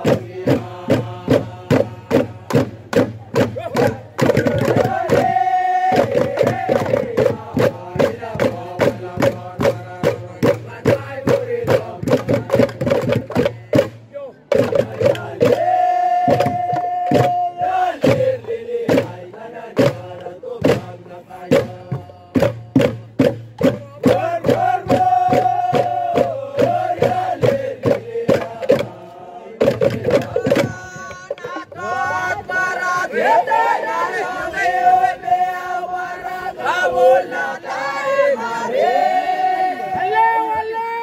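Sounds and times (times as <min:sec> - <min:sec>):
fast percussive beat: 0:00.0 - 0:35.7
group chanting in unison: 0:00.0 - 0:41.0.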